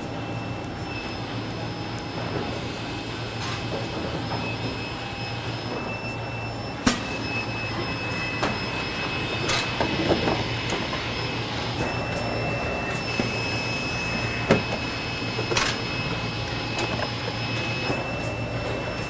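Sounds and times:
machine hum with high whine: 0.0 - 19.0.

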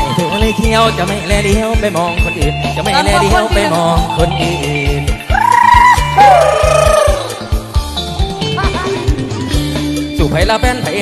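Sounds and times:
steady bass drum beat: 0.0 - 11.0
wavering lead melody: 2.4 - 8.1.

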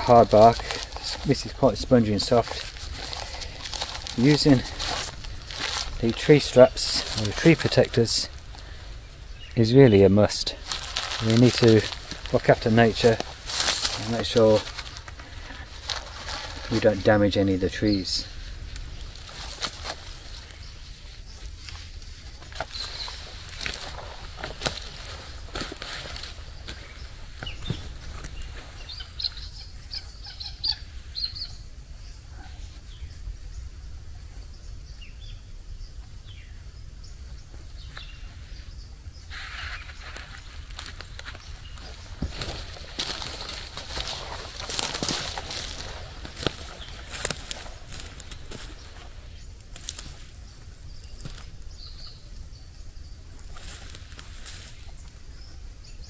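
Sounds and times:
footsteps crunching on dry leaves: 0.0 - 9.0, 9.7 - 30.4, 39.4 - 52.2, 53.4 - 55.0
straps and fabric rustling: 10.6 - 17.3.

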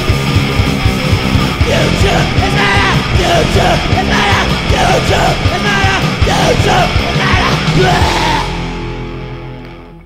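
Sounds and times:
punk metal band playing: 0.0 - 10.0
shouted vocals: 1.6 - 8.7.

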